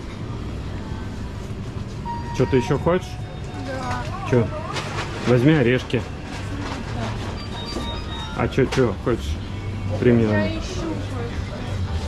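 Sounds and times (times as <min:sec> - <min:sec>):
faint background music: 0:00.0 - 0:12.0
faint high beeps: 0:02.0 - 0:04.0.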